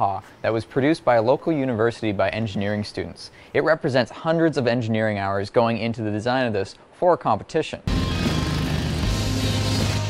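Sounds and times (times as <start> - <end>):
rock music with sustained bass: 7.9 - 10.0.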